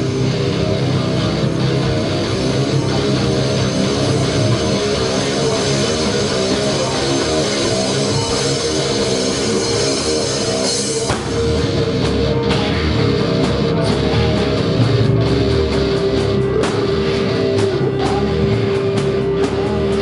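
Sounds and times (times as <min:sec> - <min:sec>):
live metal band playing: 0:00.0 - 0:20.0.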